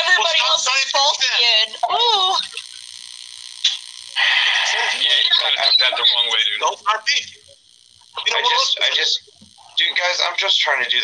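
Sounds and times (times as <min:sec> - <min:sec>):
man talking: 0:04.9 - 0:07.4.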